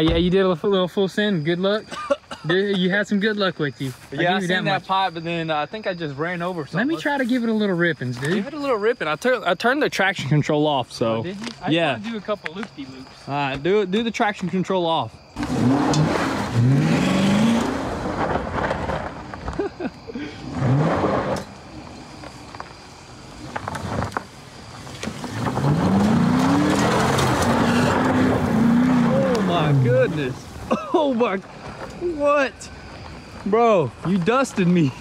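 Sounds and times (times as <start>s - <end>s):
car engine revving hard: 15.4s - 18.6s, 20.4s - 21.5s, 25.2s - 30.2s
wheels spinning throwing dirt: 15.4s - 35.0s.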